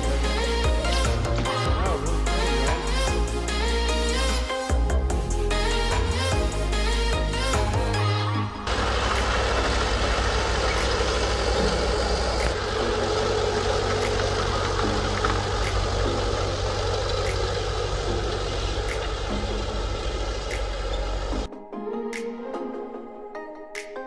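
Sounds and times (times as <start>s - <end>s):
snowcat engine running: 8.7s - 21.5s.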